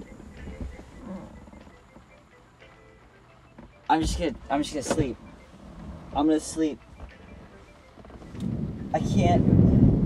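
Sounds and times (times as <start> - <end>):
low background rumble: 4.0 - 10.0.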